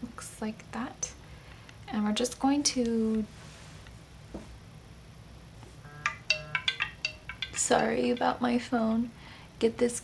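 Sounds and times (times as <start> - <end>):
mobile phone ringtone: 5.8 - 7.6.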